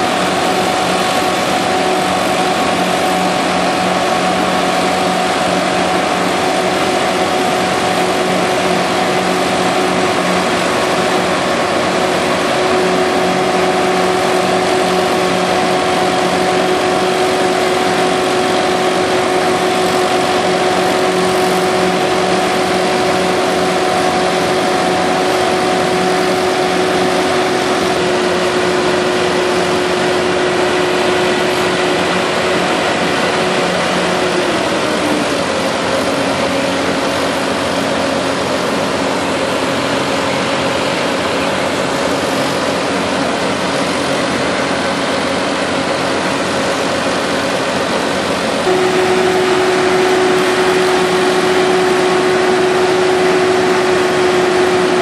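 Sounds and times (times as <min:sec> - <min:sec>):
diesel engine drone with whine: 0:00.0 - 0:55.0.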